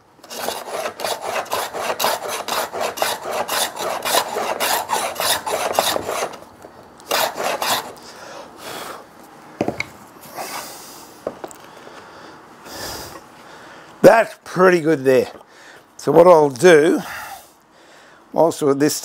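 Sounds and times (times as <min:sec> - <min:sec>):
hand plane scraping wood: 0:00.2 - 0:06.4, 0:07.1 - 0:08.0.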